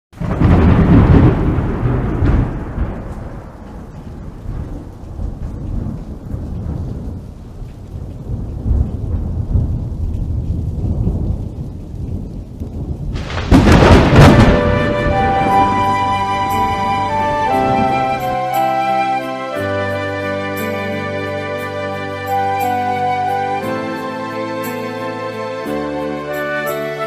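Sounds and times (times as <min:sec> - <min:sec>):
low rumbling thunder: 0:00.2 - 0:18.6
loud thunder peal: 0:00.2 - 0:18.9
rain hiss: 0:00.2 - 0:27.0.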